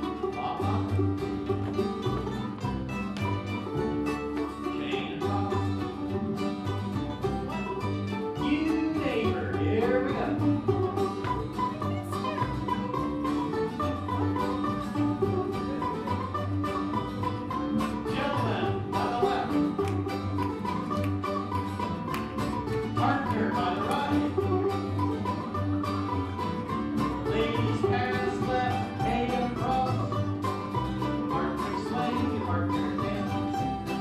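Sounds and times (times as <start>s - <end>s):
string band playing dance tune: 0.0s - 34.0s.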